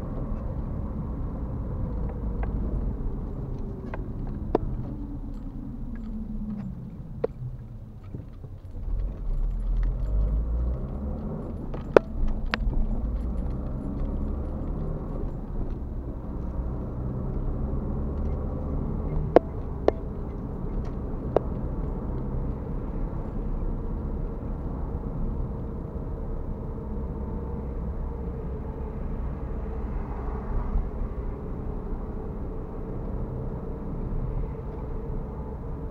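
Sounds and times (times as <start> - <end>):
car tyre and engine rumble: 0.0 - 35.9.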